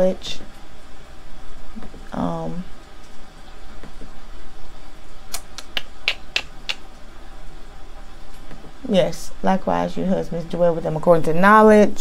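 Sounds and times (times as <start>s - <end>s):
low room hum: 0.0s - 12.0s
sharp clicks: 5.3s - 6.9s.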